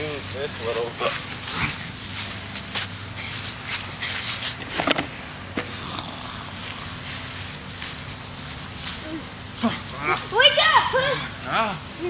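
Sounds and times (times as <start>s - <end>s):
footsteps on grass: 0.0s - 12.0s
low steady hum: 0.0s - 12.0s.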